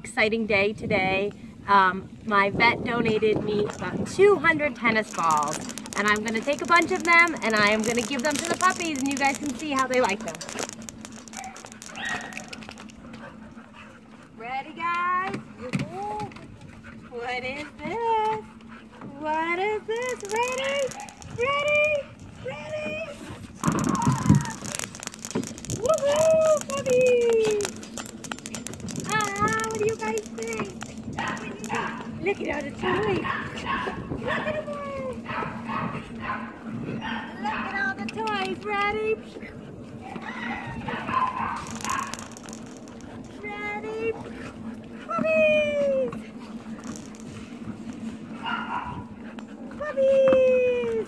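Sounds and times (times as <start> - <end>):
steady low hum: 0.0 - 51.0
dogs playing: 2.7 - 51.0
tennis balls bouncing on dirt: 3.6 - 13.0, 23.5 - 32.7
dog whine: 23.6 - 29.7.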